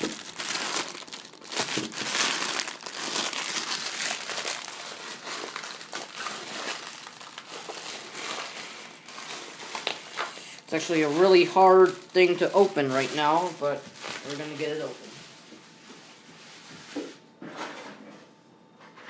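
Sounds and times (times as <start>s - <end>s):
packaging crinkling: 0.0s - 17.1s.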